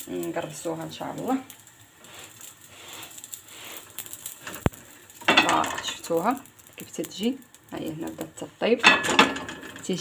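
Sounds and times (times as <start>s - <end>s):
low steady hiss: 0.0s - 10.0s.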